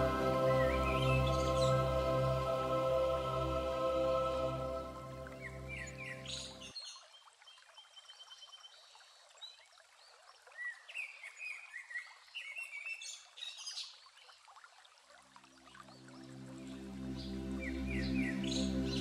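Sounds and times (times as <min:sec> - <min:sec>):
soft instrumental music: 0:00.0 - 0:06.7, 0:16.0 - 0:19.0
stream rushing: 0:00.0 - 0:06.7.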